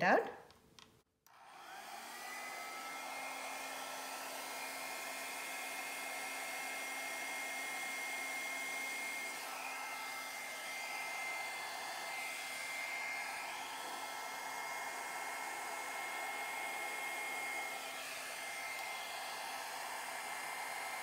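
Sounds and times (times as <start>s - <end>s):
hair dryer running: 1.3s - 21.0s.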